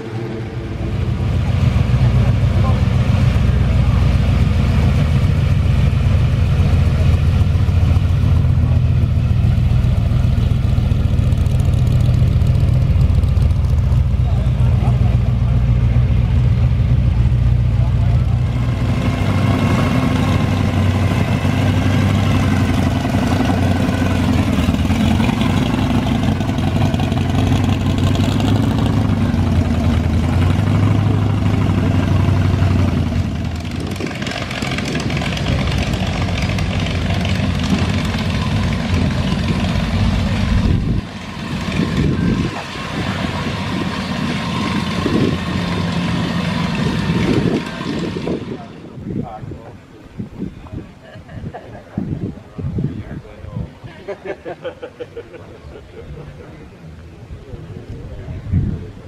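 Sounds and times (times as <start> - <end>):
car engines running low: 0.0 - 59.0.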